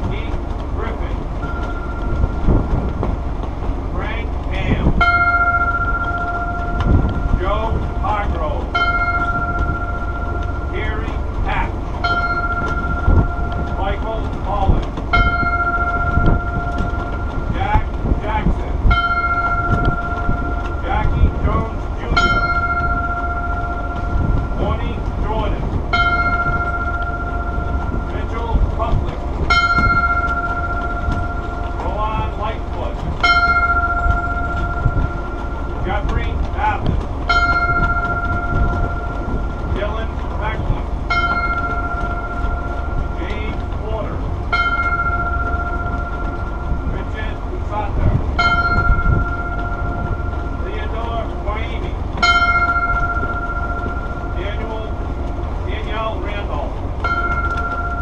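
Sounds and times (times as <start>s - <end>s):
low rumble of wind: 0.0s - 58.0s
ship noise: 0.0s - 58.0s
ship's bell tolling: 0.0s - 58.0s.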